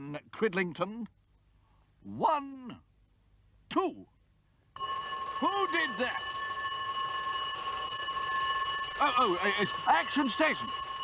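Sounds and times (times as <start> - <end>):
electric alarm bell ringing: 4.8 - 11.0.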